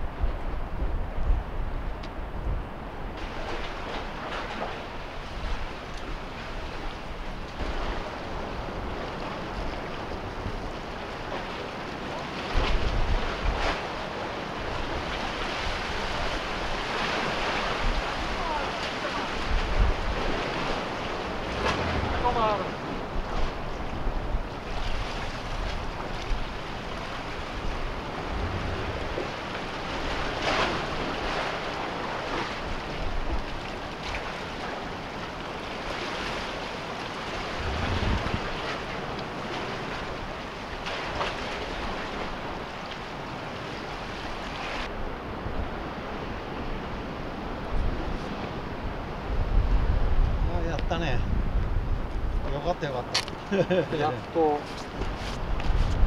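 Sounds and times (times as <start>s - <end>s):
wind buffeting microphone: 0.0s - 56.0s
sea waves washing against concrete: 1.5s - 56.0s.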